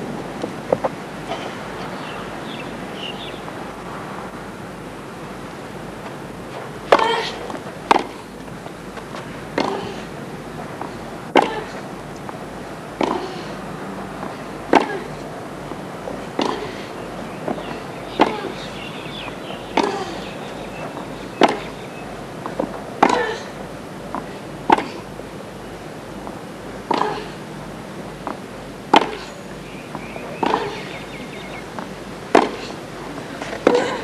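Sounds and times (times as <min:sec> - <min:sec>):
steady background hiss: 0:00.0 - 0:34.0
rackets hitting tennis ball: 0:06.0 - 0:12.3, 0:12.9 - 0:13.6, 0:14.2 - 0:15.2, 0:16.2 - 0:18.8, 0:19.7 - 0:20.2, 0:20.8 - 0:21.8, 0:24.1 - 0:25.1, 0:28.2 - 0:29.3, 0:29.9 - 0:34.0.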